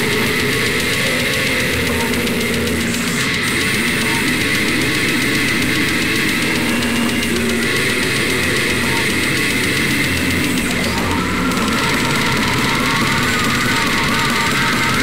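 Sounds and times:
death metal music: 0.0s - 15.0s.

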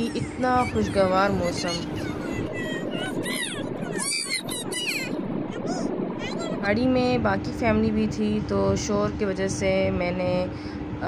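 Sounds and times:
high-pitched voices: 0.0s - 8.9s.

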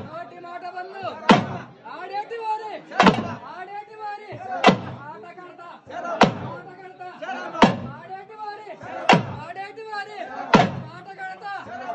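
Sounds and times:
men shouting: 5.8s - 11.9s.

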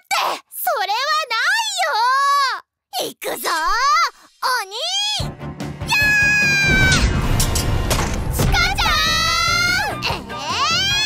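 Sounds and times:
girl shouting: 0.0s - 5.3s, 5.9s - 7.1s, 8.4s - 11.0s
background music: 5.2s - 11.0s.

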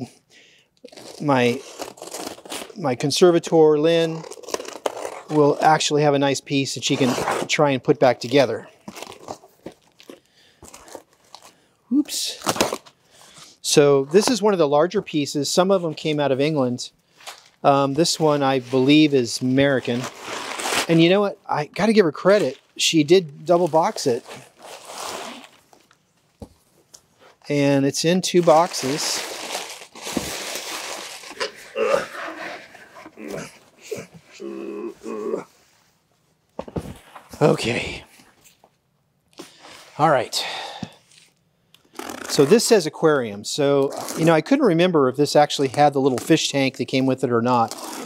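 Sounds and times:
packing paper and cardboard rustling: 8.8s - 13.0s, 17.2s - 21.2s, 28.2s - 33.5s
short pitched vocal sounds: 31.6s - 35.6s.

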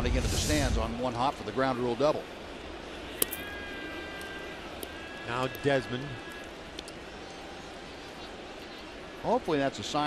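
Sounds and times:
stadium crowd hum: 0.0s - 10.0s.

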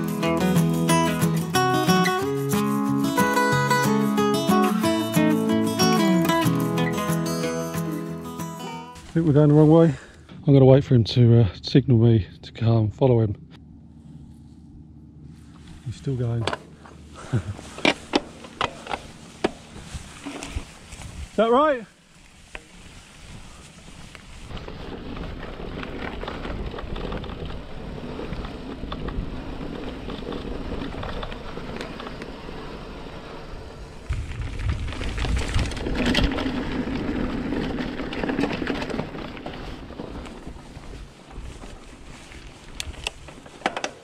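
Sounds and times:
bike rattling: 0.0s - 8.2s, 15.2s - 44.0s
bike tyres rumbling on grass: 14.0s - 44.0s
wind buffeting microphone: 19.2s - 21.4s, 22.8s - 43.5s.

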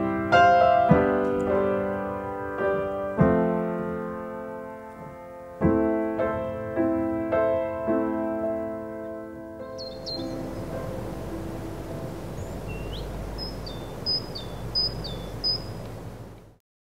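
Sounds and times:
piano notes: 0.0s - 16.6s
steady outdoor noise: 0.0s - 16.6s
bird calling: 9.7s - 16.6s.

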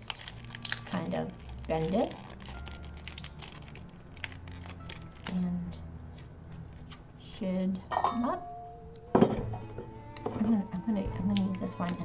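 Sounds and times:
plastic-wrapped wax bar crackling: 0.0s - 7.3s, 9.6s - 12.0s.

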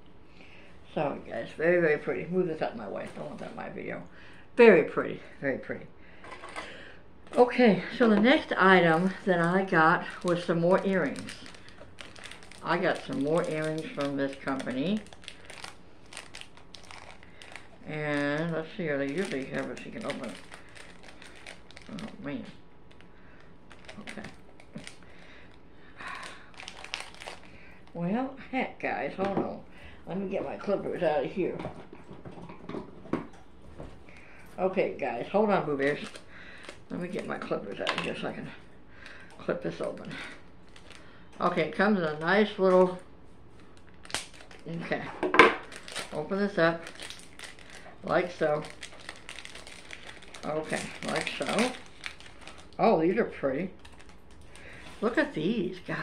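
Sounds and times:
package crinkling and clicking: 8.3s - 22.2s, 22.9s - 25.6s, 26.2s - 28.0s, 35.8s - 38.1s, 39.0s - 41.1s, 43.6s - 44.7s, 45.6s - 46.2s, 46.8s - 52.8s, 53.8s - 55.0s.

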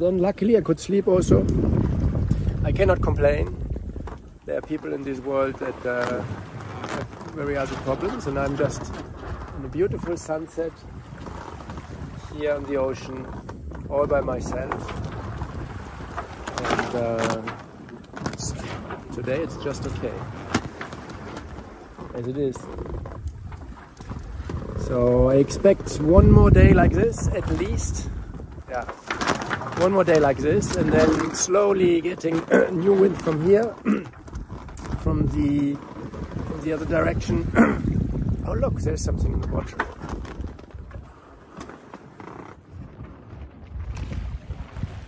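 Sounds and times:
boat knocking and creaking: 0.0s - 45.0s
wind rumble on microphone: 0.0s - 45.0s
man talking: 2.6s - 3.6s, 4.5s - 6.3s, 6.9s - 8.9s, 9.6s - 10.8s, 12.2s - 13.3s, 13.9s - 14.9s, 16.6s - 17.6s, 18.3s - 20.2s, 22.2s - 22.7s, 24.8s - 28.1s, 28.7s - 29.0s, 29.7s - 34.0s, 34.8s - 35.8s, 36.5s - 37.8s, 38.4s - 39.9s.

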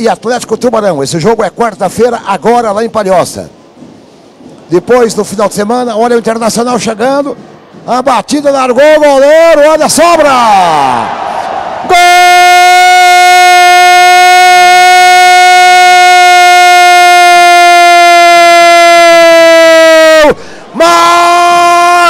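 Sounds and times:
quick breath: 20.4s - 20.8s.

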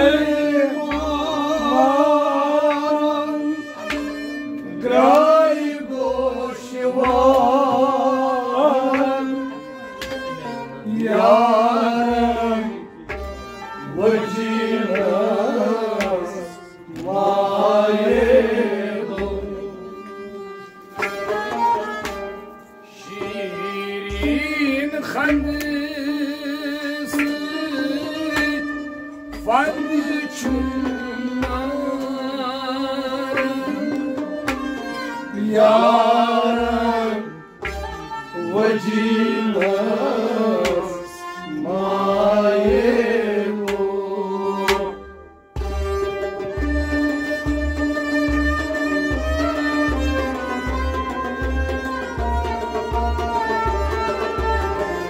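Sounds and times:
man singing: 0.0s - 13.0s, 13.7s - 20.6s, 22.9s - 45.2s
harmonium held note: 0.0s - 25.7s, 27.0s - 55.0s
bowed fiddle: 0.0s - 55.0s
bowed fiddle holding a note: 33.7s - 39.9s.

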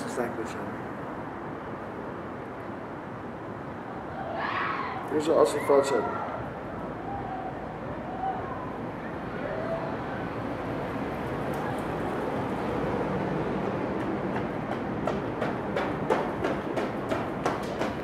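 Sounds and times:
passing vehicles rumbling: 0.0s - 18.0s.

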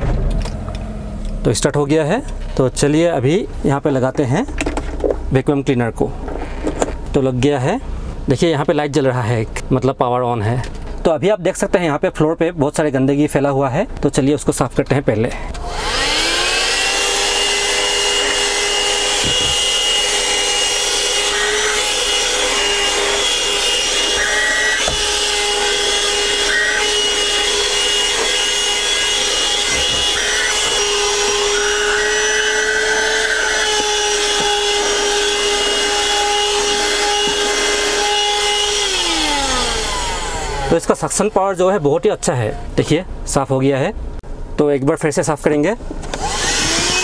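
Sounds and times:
handheld vacuum cleaner running: 15.6s - 41.0s, 46.1s - 47.0s.

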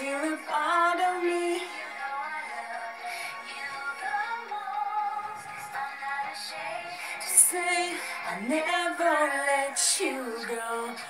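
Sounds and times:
pop song with processed female vocal: 0.0s - 11.0s.

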